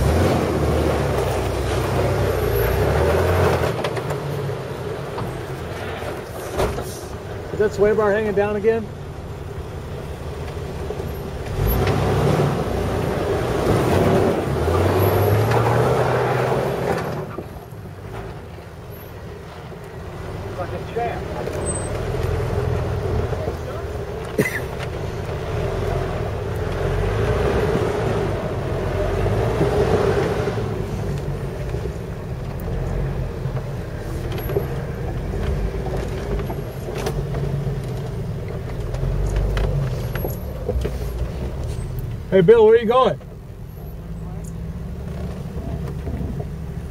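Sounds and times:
car engine revving at low speed: 0.0s - 18.6s, 19.2s - 46.9s.

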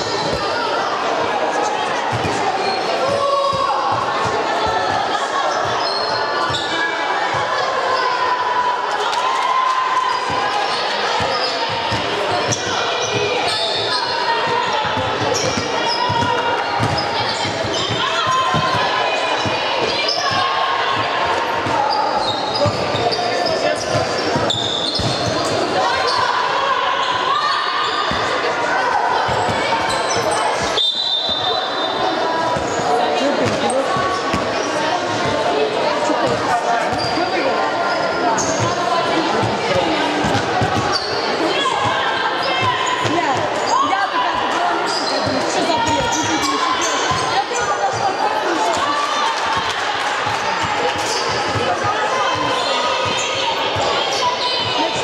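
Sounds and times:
basketball bouncing on wooden court: 14.5s - 19.6s, 40.2s - 41.0s.

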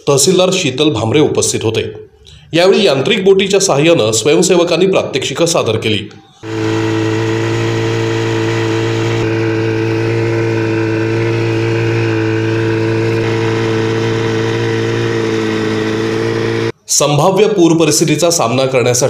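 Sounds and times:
outboard motor running: 6.4s - 16.8s.

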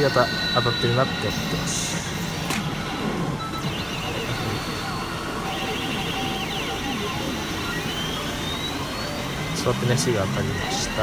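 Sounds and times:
electronic effects and voice lines: 0.0s - 2.3s, 3.4s - 11.0s
many pachinko machines running: 0.0s - 11.0s.

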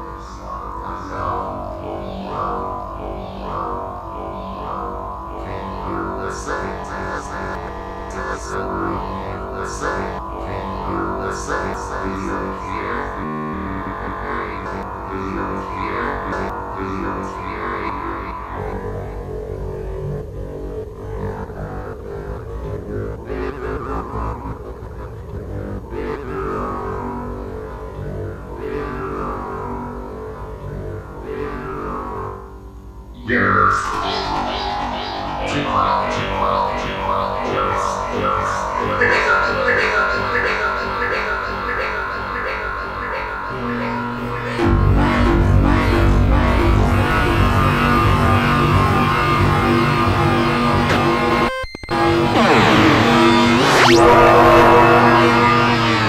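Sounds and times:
synthesizer and guitar band music: 33.3s - 56.0s.

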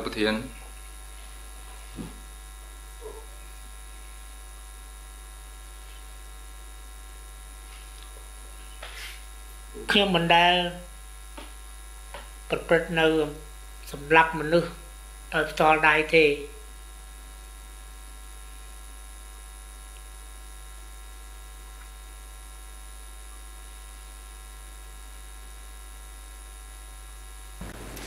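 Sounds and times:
electrical mains hum: 0.0s - 28.0s.

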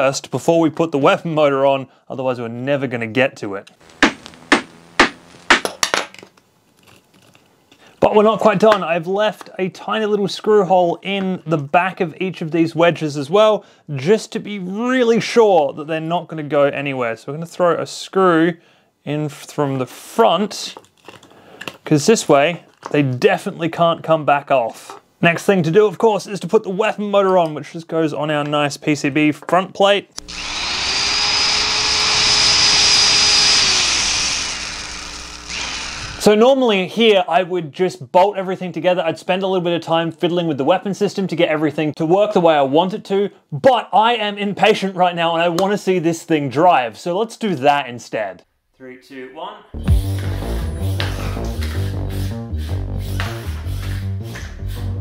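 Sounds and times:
small electric motor whirring: 3.8s - 5.6s, 30.2s - 36.3s.

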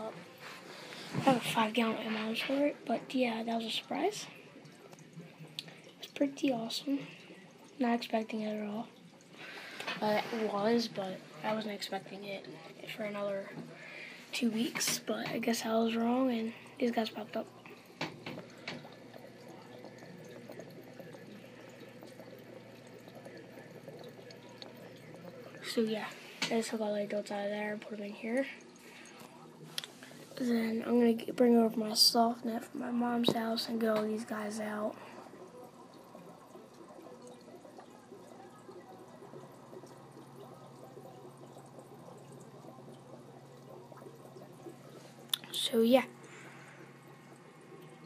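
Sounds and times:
aquarium water trickling: 0.0s - 48.0s.

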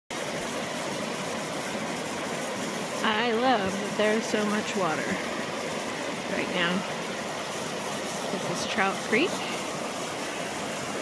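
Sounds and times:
creek rushing over rocks: 0.1s - 11.0s.

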